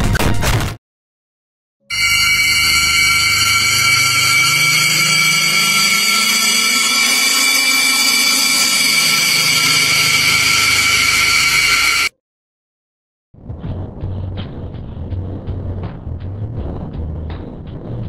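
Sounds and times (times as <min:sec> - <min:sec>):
high ringing tones: 0:01.9 - 0:12.1
horror drone: 0:01.9 - 0:12.1
low tone rising and sinking: 0:01.9 - 0:12.1.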